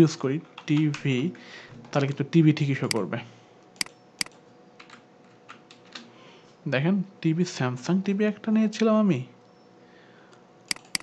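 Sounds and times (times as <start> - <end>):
keyboard key presses: 10.7 - 11.0.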